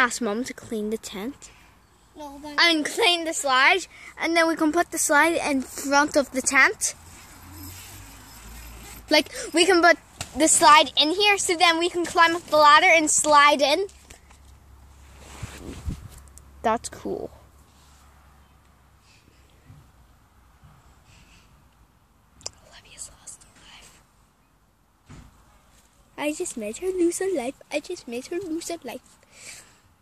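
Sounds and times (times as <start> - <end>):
child whispering: 1.3 - 2.8, 22.4 - 24.0
phone microphone handling noise: 15.2 - 16.4.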